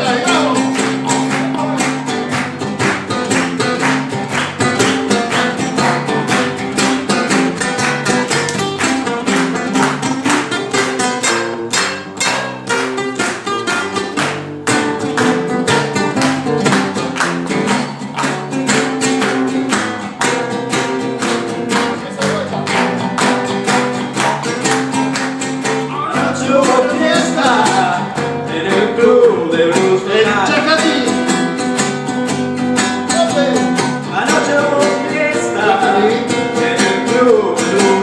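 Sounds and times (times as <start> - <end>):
person singing: 0.0 - 2.3, 25.8 - 31.2, 33.1 - 38.0
acoustic guitar strumming: 0.0 - 38.0
hand-clapping in rhythm: 0.0 - 38.0.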